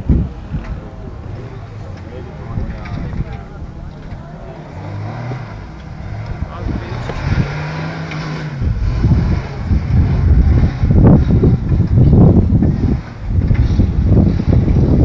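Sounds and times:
engine droning under load: 0.0s - 15.0s
wind buffeting microphone: 0.0s - 15.0s.

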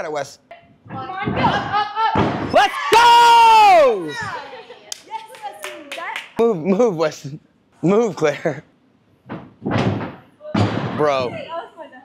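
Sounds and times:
thuds on gym floor: 0.9s - 2.6s, 9.2s - 11.5s.

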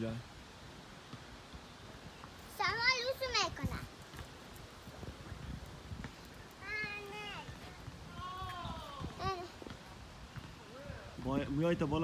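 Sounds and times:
faint outdoor rumble: 0.0s - 12.0s.

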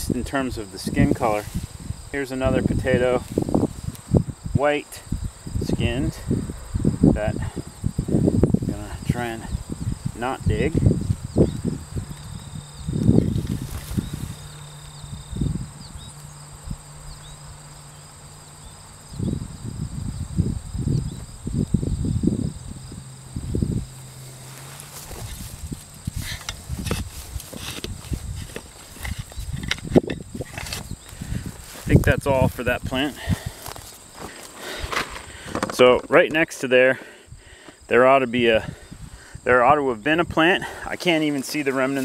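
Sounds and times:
insects chirping: 0.0s - 42.0s
hands scraping through soil: 24.2s - 29.6s.

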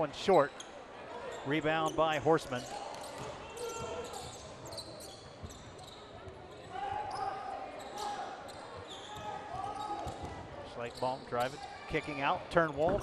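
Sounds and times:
crowd murmur in a large hall: 0.0s - 13.0s.

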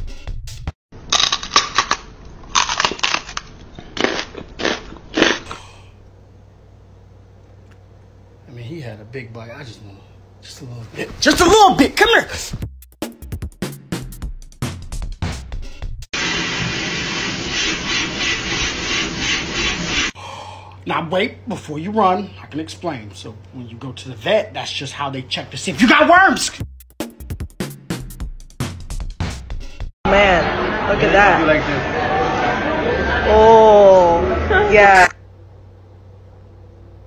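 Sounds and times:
crunching bites: 1.0s - 5.7s
stuffing machine blowing air: 16.2s - 20.2s.

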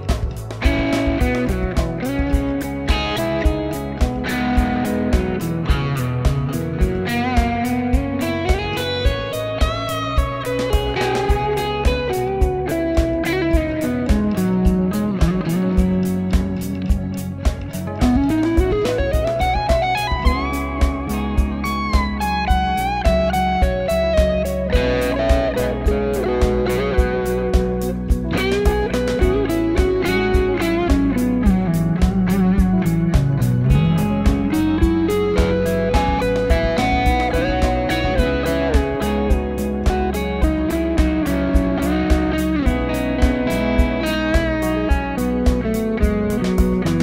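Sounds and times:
backing track drum beat: 0.0s - 47.0s
electric guitar lead: 0.0s - 47.0s.

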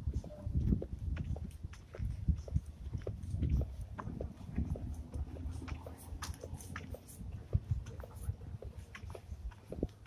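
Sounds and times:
footsteps on dry leaves: 0.7s - 10.0s.

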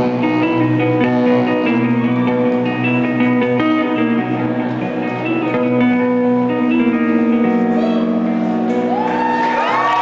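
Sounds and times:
electric guitars tapping notes: 0.0s - 9.2s.

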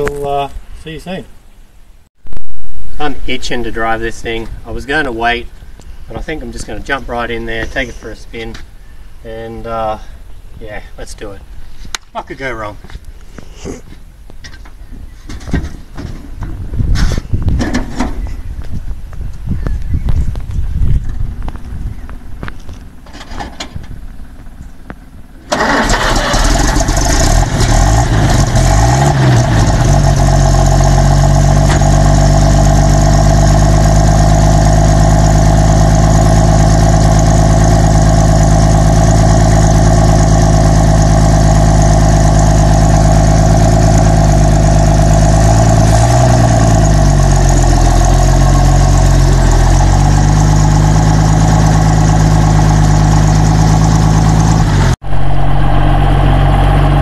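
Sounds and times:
truck engine running: 20.2s - 57.0s.

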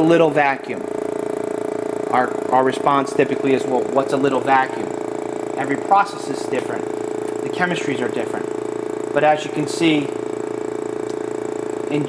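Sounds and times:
vacuum pump humming with pulse: 0.0s - 12.0s.

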